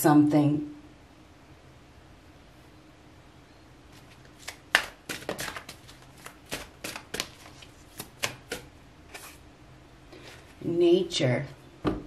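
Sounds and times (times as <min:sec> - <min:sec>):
cards being shuffled: 0:03.9 - 0:09.4.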